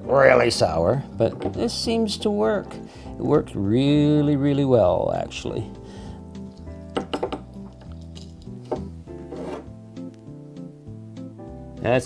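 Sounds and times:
soft background music: 0.0 - 12.0
glass jigger clinks: 7.0 - 8.9.

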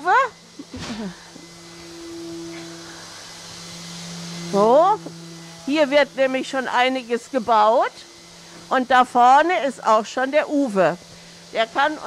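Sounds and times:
workshop machinery hum: 0.0 - 12.0.

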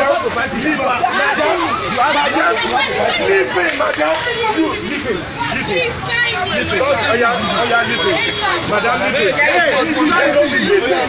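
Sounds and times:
voices arguing loudly: 0.0 - 11.0.

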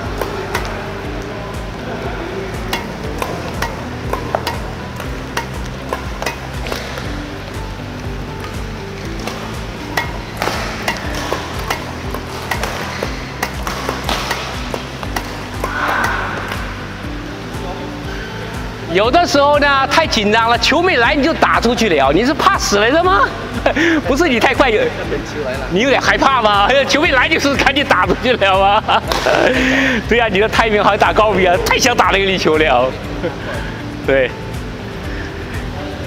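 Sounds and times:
racket striking shuttlecocks: 0.0 - 1.6, 2.5 - 17.6, 29.0 - 29.5
background music: 0.0 - 36.0.

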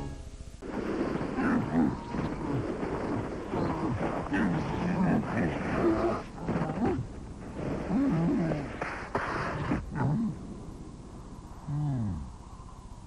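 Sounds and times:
sliding in snow: 0.6 - 9.8
bear cubs grunting: 1.1 - 10.5.

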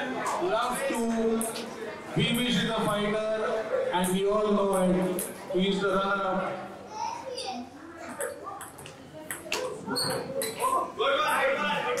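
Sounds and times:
voices in a hall: 0.0 - 12.0.

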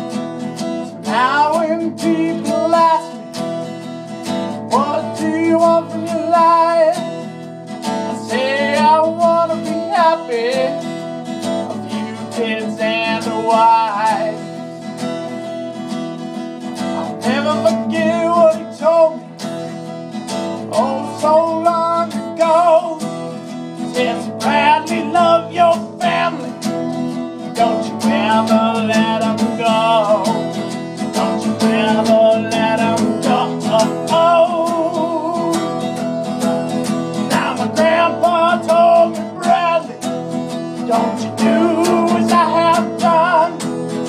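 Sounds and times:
acoustic guitar strumming: 0.0 - 44.0
person singing wordless melody: 1.0 - 3.3, 4.6 - 7.4, 8.1 - 10.8, 11.6 - 14.9, 17.0 - 19.4, 20.6 - 26.6, 27.5 - 36.2, 37.0 - 40.1, 40.7 - 44.0.

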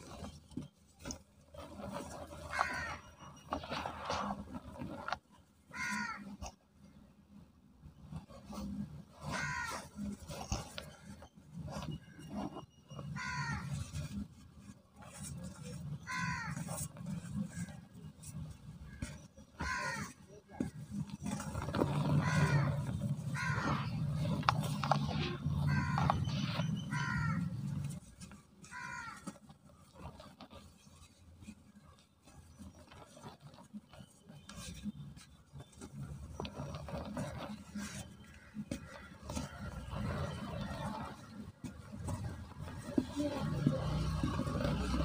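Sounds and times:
harsh bird calls: 25.0 - 27.8.

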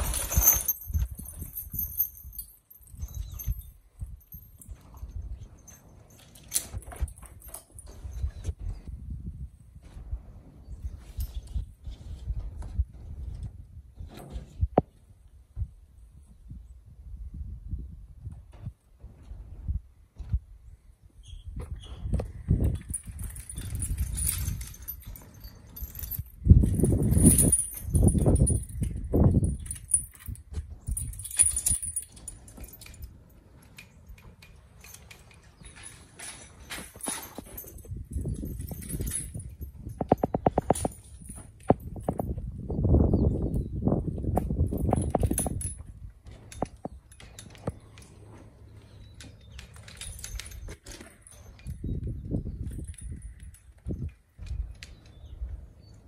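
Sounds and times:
harness chains jingling: 0.0 - 8.5, 22.3 - 42.4, 44.4 - 55.9.

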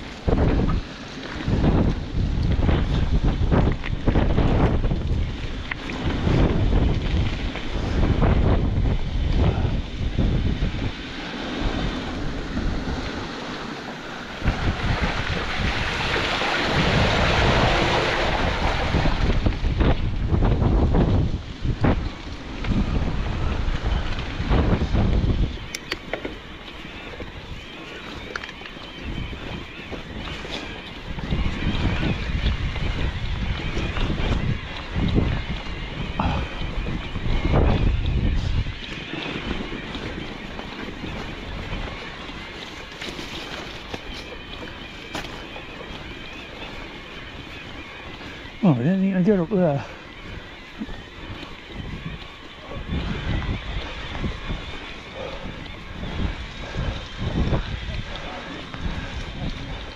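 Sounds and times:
wind buffeting microphone: 0.0 - 59.9.

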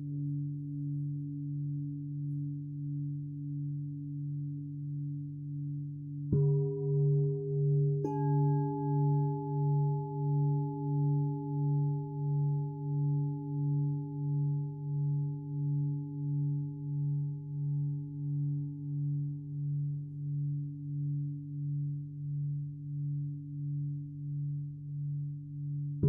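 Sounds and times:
deep temple bell hum: 6.3 - 21.8.

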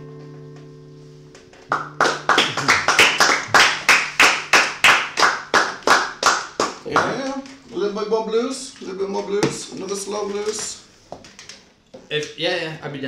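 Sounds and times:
acoustic guitar chord: 0.0 - 4.2
hand clapping: 1.4 - 7.4.

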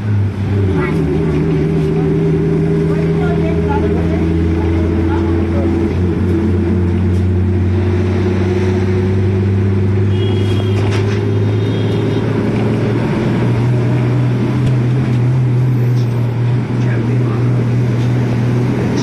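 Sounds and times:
vehicle engine humming: 0.0 - 19.0.

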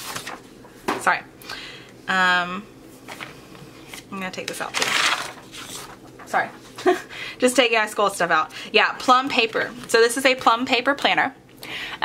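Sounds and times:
papers shifting and sliding: 0.0 - 0.5, 3.9 - 6.8.

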